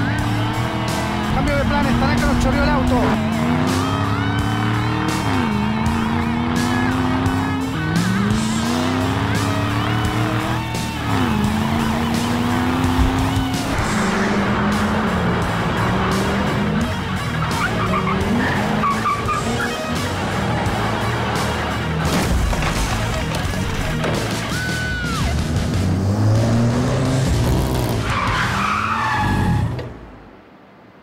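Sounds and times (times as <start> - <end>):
background music: 0.0 - 29.7
car engine accelerating: 0.0 - 30.6
tyre squeal: 17.4 - 19.9.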